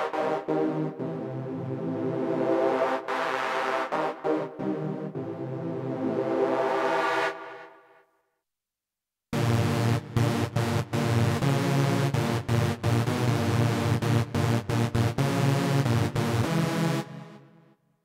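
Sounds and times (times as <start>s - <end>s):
synthesizer rhythmic pattern: 0.0s - 7.5s, 9.4s - 17.5s.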